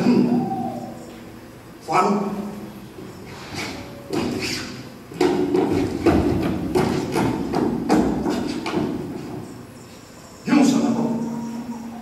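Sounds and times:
knocks and thuds on wooden floor: 5.2 - 9.3.

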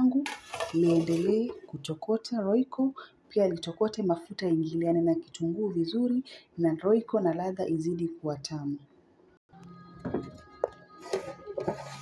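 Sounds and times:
wooden spoon scraping metal pot: 0.1 - 1.8, 11.0 - 12.0.

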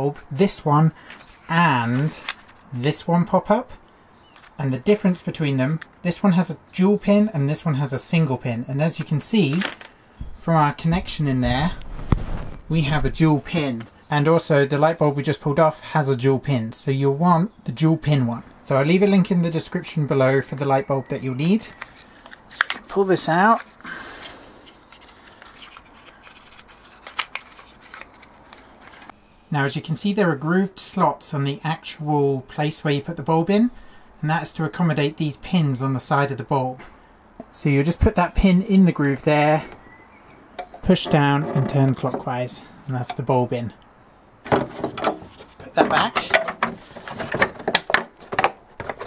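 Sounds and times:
cardboard box flaps rustling: 11.8 - 12.7.

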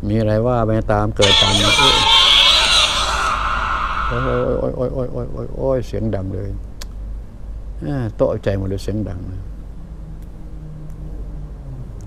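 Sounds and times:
harsh high-pitched screech: 1.2 - 4.7.

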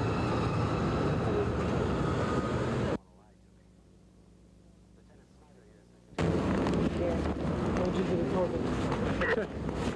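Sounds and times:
loud outdoor rushing noise: 0.0 - 3.0, 6.2 - 9.9.

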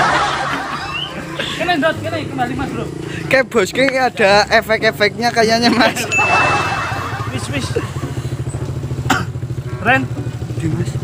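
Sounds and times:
small engine idling: 6.9 - 11.0.

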